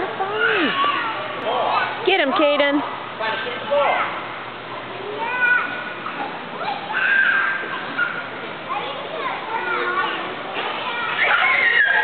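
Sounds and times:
young children calling: 0.0s - 2.0s, 4.9s - 12.0s
hubbub of children playing: 0.0s - 12.0s.

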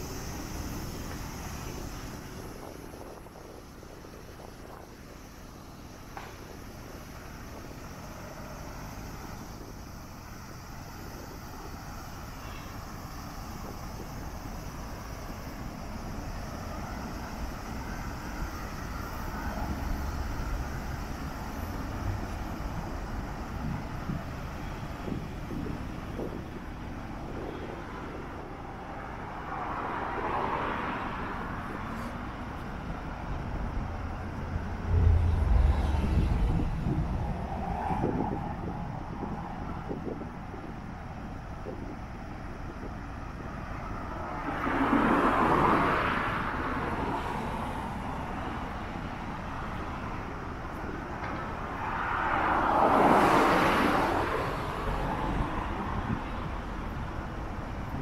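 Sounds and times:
cars driving by: 0.0s - 58.0s
vehicle passing: 34.0s - 39.2s
low rumble: 34.4s - 39.1s.

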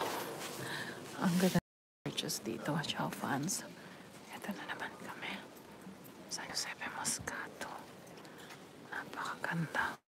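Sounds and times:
whispered speech: 1.2s - 5.6s, 6.3s - 7.9s, 8.9s - 10.0s.

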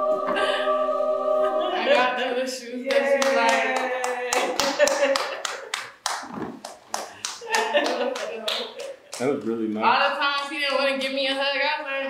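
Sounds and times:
excited exclaiming voices: 1.6s - 5.5s
hands clapping: 2.9s - 9.5s.

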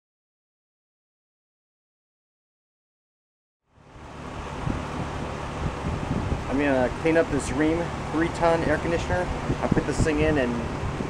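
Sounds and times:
air conditioner fan running: 3.7s - 11.0s
wind thumps on microphone: 4.4s - 6.8s, 8.6s - 11.0s.

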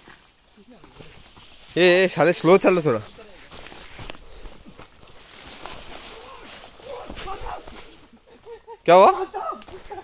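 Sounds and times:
leaves brushing: 0.0s - 8.2s
footsteps through undergrowth: 0.0s - 10.0s.

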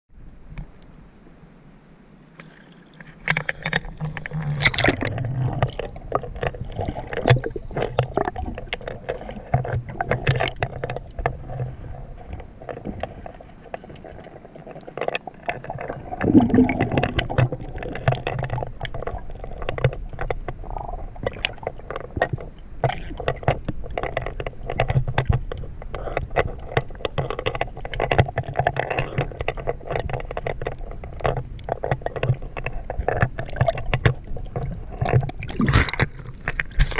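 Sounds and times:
low underwater rumble: 2.4s - 36.9s
sharp clicks and crackles: 2.4s - 36.9s.

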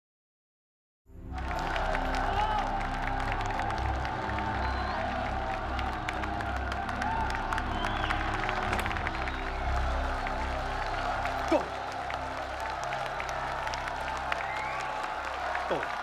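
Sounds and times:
crowd clapping and cheering: 1.2s - 16.0s.

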